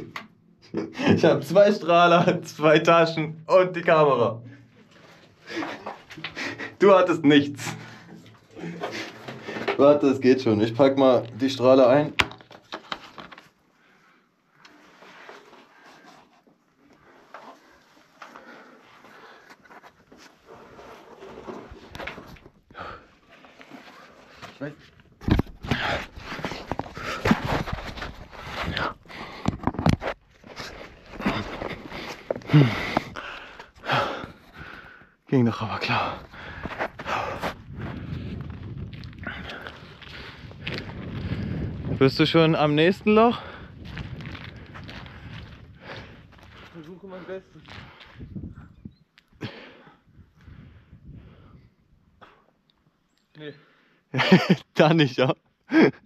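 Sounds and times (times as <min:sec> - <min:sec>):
person breathing hard: 0:30.6 - 0:35.2, 0:35.9 - 0:38.5, 0:43.4 - 0:46.8, 0:49.4 - 0:52.5.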